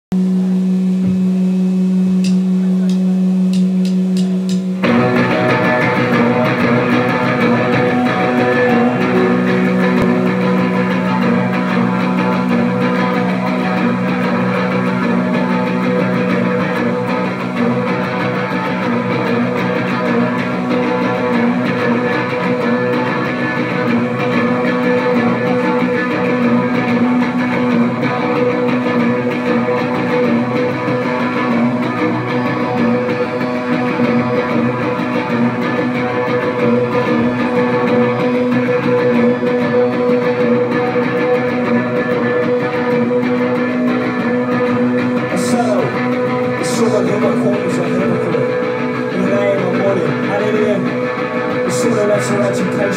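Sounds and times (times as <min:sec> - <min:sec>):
bass guitar: 0:00.1 - 0:52.9
electric guitar chords: 0:00.2 - 0:52.9.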